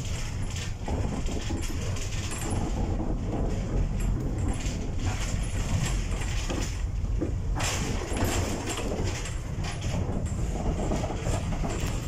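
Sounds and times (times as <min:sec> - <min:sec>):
tram wheels rumbling on rails: 0:00.0 - 0:12.0.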